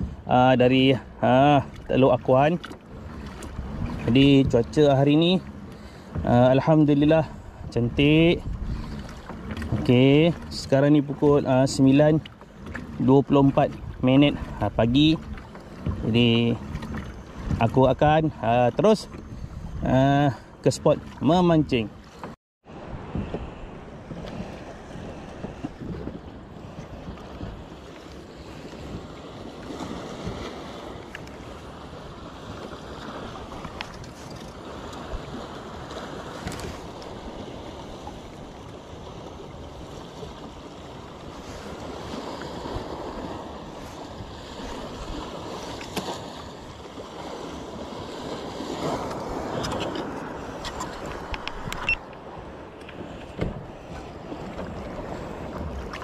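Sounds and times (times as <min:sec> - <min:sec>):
wind buffeting microphone: 0:00.0 - 0:00.3, 0:01.0 - 0:21.2, 0:22.7 - 0:56.0
water lapping against kayak hull: 0:00.0 - 0:56.0.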